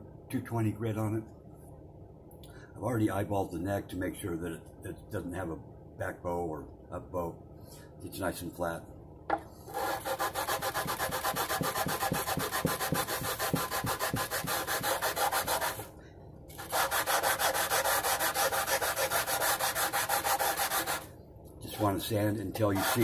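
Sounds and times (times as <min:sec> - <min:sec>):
sanding block rubbing on frets: 0:09.7 - 0:15.9, 0:16.6 - 0:21.0, 0:22.6 - 0:23.0.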